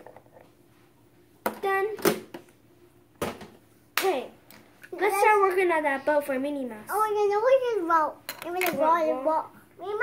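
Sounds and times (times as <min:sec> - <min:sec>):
child making wordless sounds: 0:04.9 - 0:10.0.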